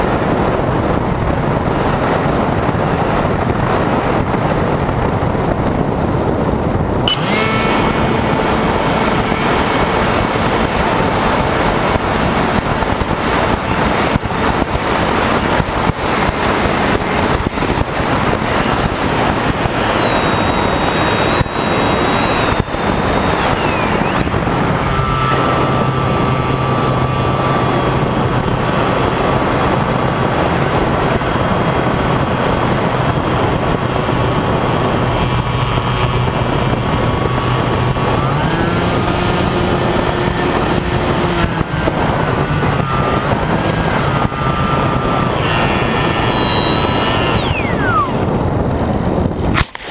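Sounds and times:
electric motor and propeller whining: 0:00.0 - 0:49.9
heavy wind rush: 0:00.0 - 0:49.9.

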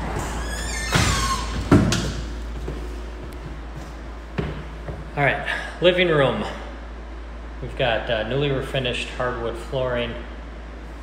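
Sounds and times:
door squeaking: 0:00.0 - 0:02.2
door banging shut: 0:00.1 - 0:02.3.

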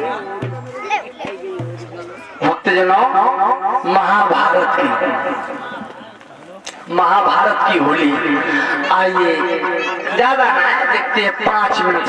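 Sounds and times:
people talking and calling: 0:00.0 - 0:12.0.

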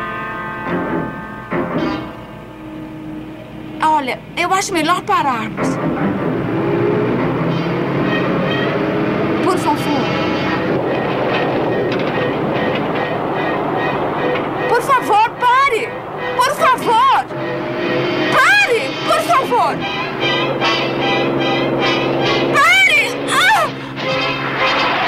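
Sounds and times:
tense music score: 0:00.0 - 0:25.0
car engine and road noise: 0:02.6 - 0:25.0
woman calling out: 0:14.7 - 0:17.3, 0:18.3 - 0:19.8, 0:22.5 - 0:23.9.

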